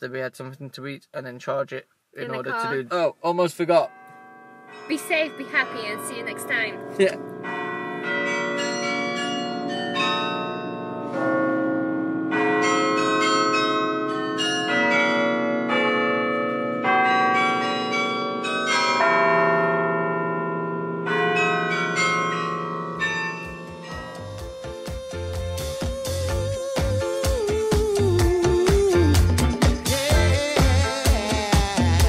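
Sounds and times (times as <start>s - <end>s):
beat-driven music: 2.3s - 3.0s, 23.4s - 32.0s
bells ringing: 3.8s - 27.2s.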